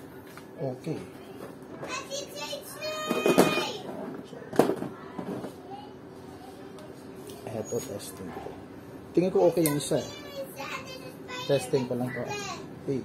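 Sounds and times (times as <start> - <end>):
children's voices: 1.8 - 3.9, 4.9 - 7.2, 9.9 - 12.7.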